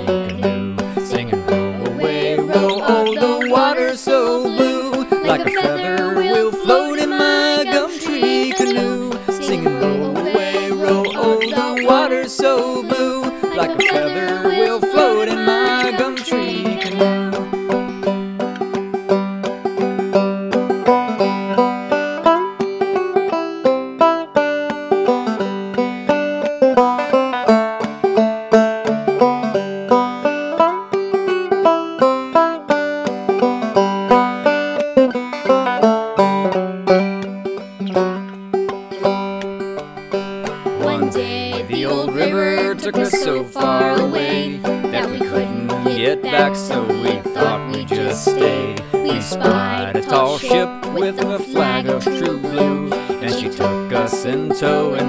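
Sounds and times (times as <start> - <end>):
banjo picking melody: 0.0 - 55.0.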